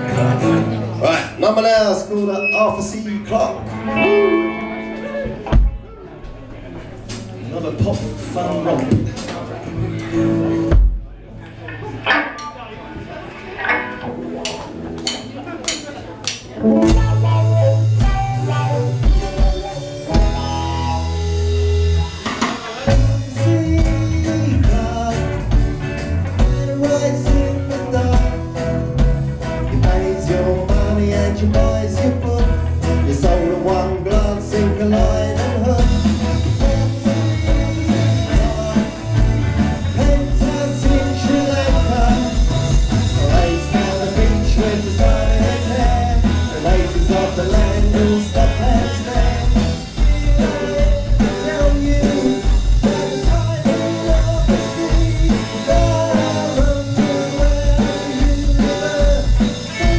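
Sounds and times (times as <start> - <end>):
live power-pop band playing: 0.0 - 59.9.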